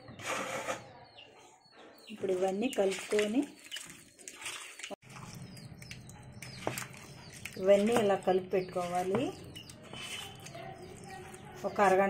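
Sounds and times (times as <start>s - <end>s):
wet squishing of mixing fish: 2.2s - 12.0s.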